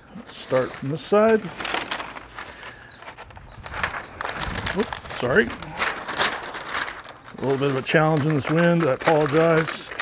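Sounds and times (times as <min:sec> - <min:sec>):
paper rustling and crinkling: 0:00.1 - 0:10.0
wind rumble on microphone: 0:03.3 - 0:05.6.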